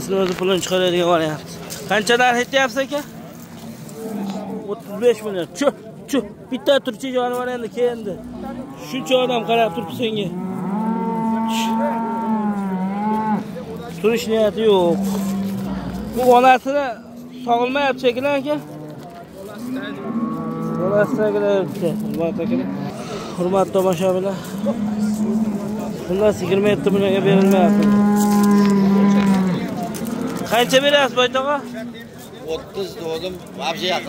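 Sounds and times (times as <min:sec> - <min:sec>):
cow mooing: 0:08.2 - 0:13.5, 0:14.6 - 0:16.4, 0:19.6 - 0:23.4, 0:24.3 - 0:30.8.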